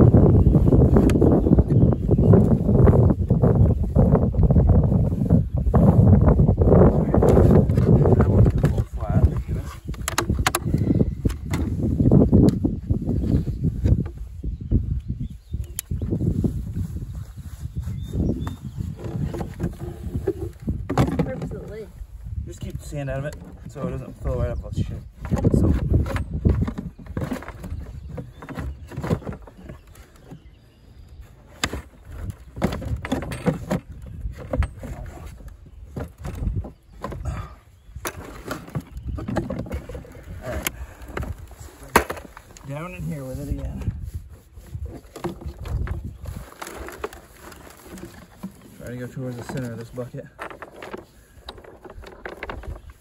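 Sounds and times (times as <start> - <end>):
hands knocking and scraping in dirt: 0.0 - 53.0
low rumbling handling noise: 0.0 - 53.0.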